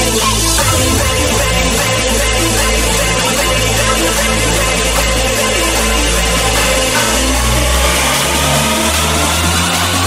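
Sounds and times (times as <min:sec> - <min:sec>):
electronic dance music: 0:00.0 - 0:10.0
growling synth bass: 0:00.3 - 0:10.0.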